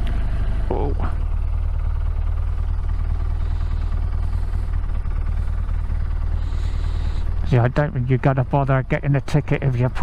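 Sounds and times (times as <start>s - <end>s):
motorcycle engine running at low revs: 0.0s - 10.0s.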